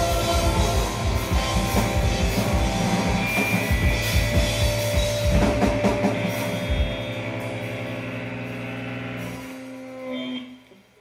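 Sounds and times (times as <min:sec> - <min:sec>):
electric guitars and bass chord ringing: 0:00.0 - 0:10.6.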